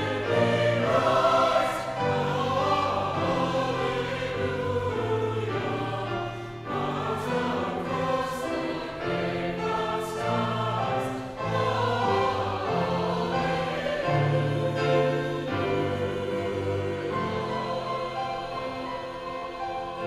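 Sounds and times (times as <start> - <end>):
mixed choir singing: 0.0 - 20.0.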